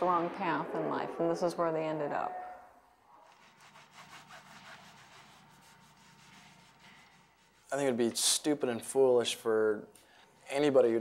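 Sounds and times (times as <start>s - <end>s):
scraping strokes: 3.1s - 8.2s.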